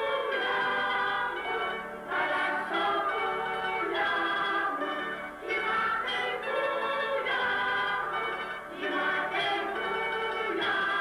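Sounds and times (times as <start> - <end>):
instrumental accompaniment: 0.0 - 11.0
mixed choir singing in harmony: 0.0 - 11.0.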